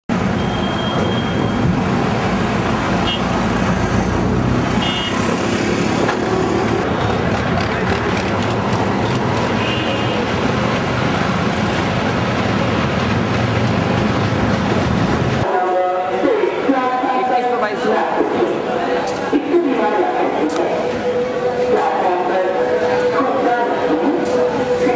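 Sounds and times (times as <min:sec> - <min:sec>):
train rumbling: 0:00.1 - 0:24.9.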